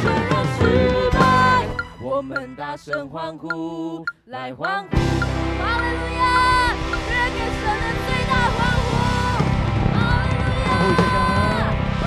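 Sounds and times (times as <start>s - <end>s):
drum kit: 0.0s - 1.9s, 5.0s - 12.0s
electric bass: 0.0s - 1.9s, 5.0s - 12.0s.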